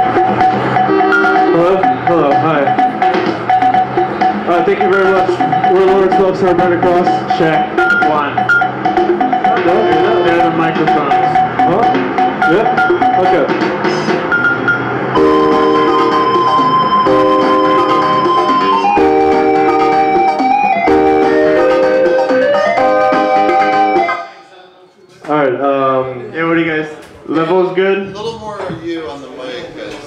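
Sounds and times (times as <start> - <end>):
held synthesizer chords: 0.0 - 24.6.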